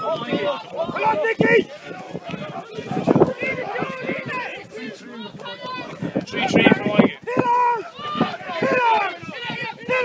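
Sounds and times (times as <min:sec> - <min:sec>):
people shouting high-pitched calls: 0:00.0 - 0:10.0.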